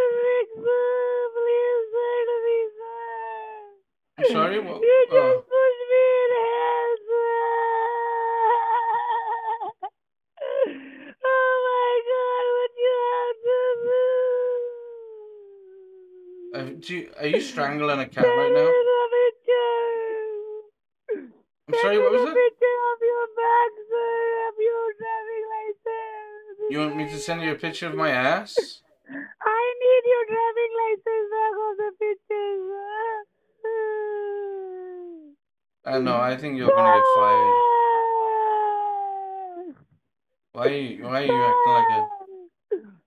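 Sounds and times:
man wailing: 4.2s - 5.4s, 16.6s - 19.9s, 21.7s - 25.7s, 26.7s - 28.8s, 36.0s - 38.3s, 40.6s - 42.2s
man sobbing: 4.2s - 15.2s, 16.5s - 20.4s, 21.7s - 34.9s, 36.0s - 39.5s, 40.6s - 42.3s
man wailing over phone line: 21.7s - 22.5s, 36.0s - 37.6s, 41.2s - 42.0s.

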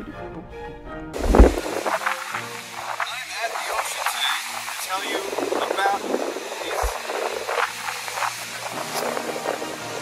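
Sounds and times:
wind rushing: 1.2s - 9.8s
small waves washing on beach: 1.2s - 10.0s
wind noise on microphone: 1.2s - 10.0s.

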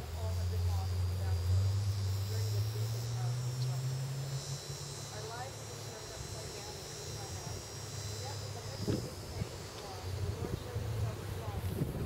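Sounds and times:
high-pitched insect chorus: 0.0s - 12.0s
low engine drone: 0.0s - 12.0s.

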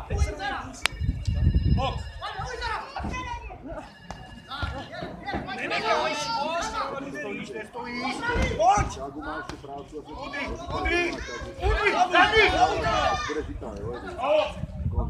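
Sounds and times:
voices talking and calling out: 0.0s - 15.0s.

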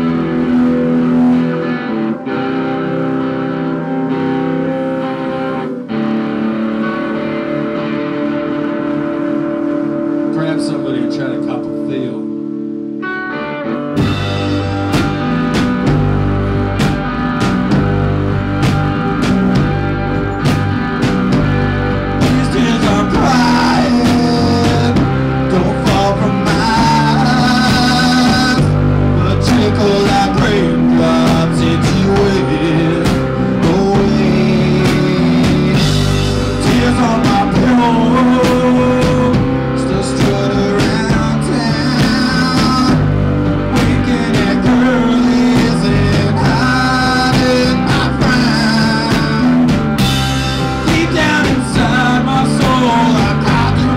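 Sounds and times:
bass guitar: 0.0s - 53.9s
electric guitar chords: 0.0s - 53.9s
live rock band playing: 0.0s - 53.9s
drum kit: 13.8s - 53.9s.

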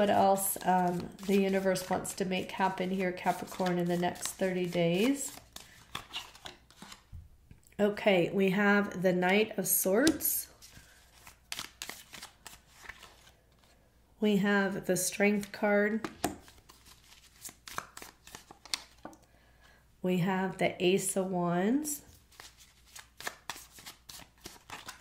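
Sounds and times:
cards being shuffled: 0.3s - 7.1s, 10.0s - 13.8s, 15.4s - 19.2s, 22.1s - 25.0s.

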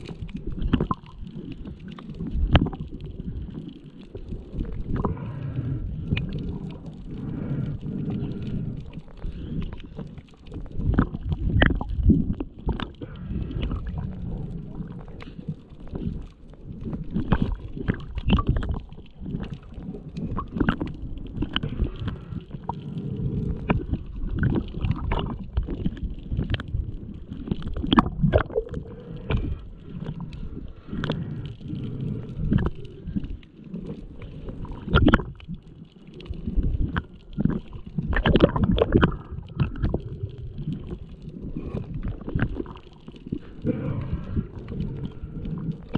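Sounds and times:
underwater gurgle of moving water: 0.0s - 45.9s.

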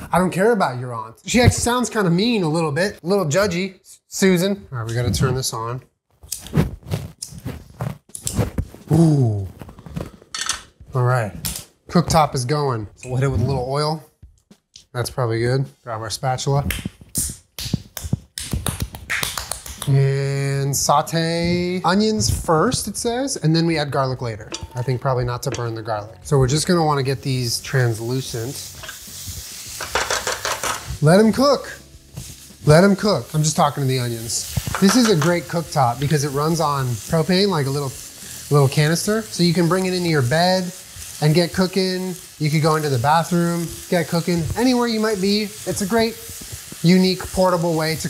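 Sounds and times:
spatula scraping pan: 24.5s - 38.7s
gas burner rush: 24.5s - 48.0s
onions sizzling in frying pan: 24.6s - 48.0s.

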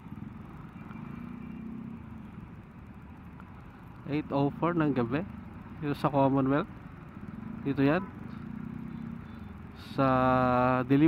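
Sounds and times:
low motorcycle and traffic hum: 0.0s - 11.0s.

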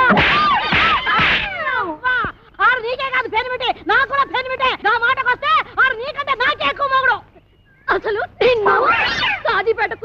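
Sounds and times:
high-pitched cry: 8.4s - 9.7s.

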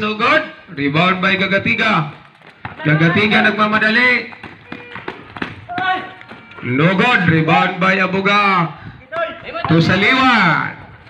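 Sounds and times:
sneakers on concrete: 1.2s - 7.8s
basketball dribbling on concrete: 1.4s - 6.7s, 9.4s - 10.2s.

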